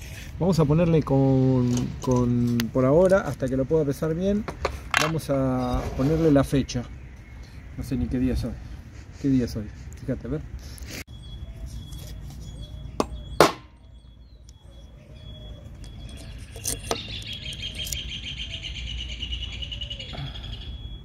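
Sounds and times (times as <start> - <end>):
bird chirping rapidly: 11.1 - 21.0
hammer striking metal punch: 13.0 - 13.7.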